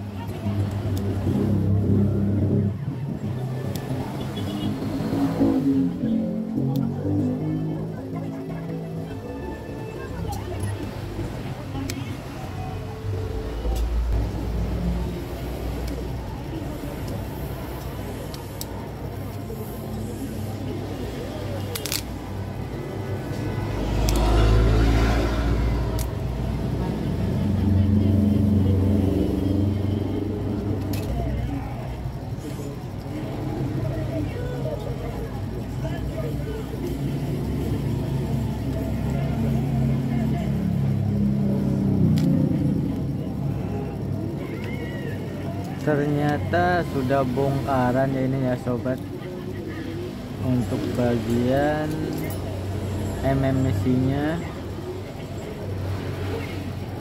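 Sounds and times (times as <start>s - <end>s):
indistinct voices: 0.0s - 57.0s
road traffic rumble: 0.0s - 57.0s
vehicle passing: 19.5s - 31.3s
phone parts clicking: 21.7s - 22.2s.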